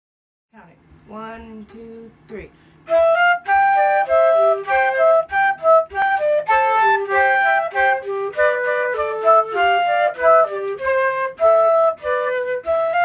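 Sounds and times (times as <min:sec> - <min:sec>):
flute duet: 0:02.9 - 0:13.0.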